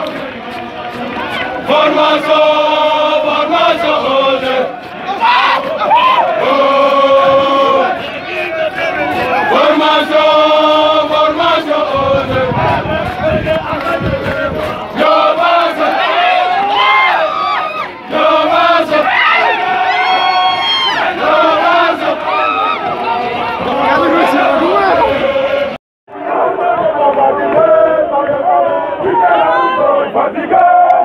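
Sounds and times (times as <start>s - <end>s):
soldiers chanting in unison: 0.0s - 31.0s.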